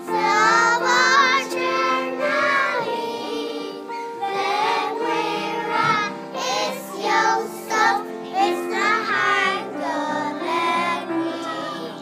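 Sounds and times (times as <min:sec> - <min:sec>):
children singing: 0:00.0 - 0:12.0
instrumental accompaniment: 0:00.0 - 0:12.0.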